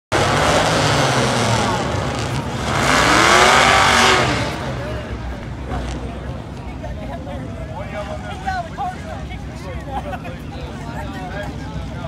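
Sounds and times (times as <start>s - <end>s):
engine revving: 0.1s - 6.0s
muscle car engines running: 0.1s - 12.0s.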